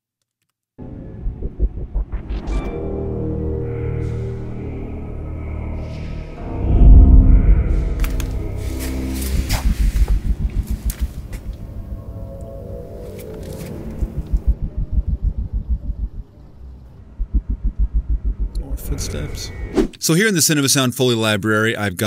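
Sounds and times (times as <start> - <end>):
action film music with pulsing beat: 0.8 - 19.6.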